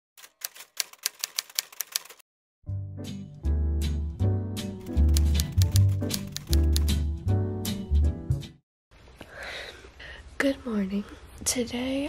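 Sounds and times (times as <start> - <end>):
typewriter key clicks: 0.2 - 2.2, 4.8 - 6.9.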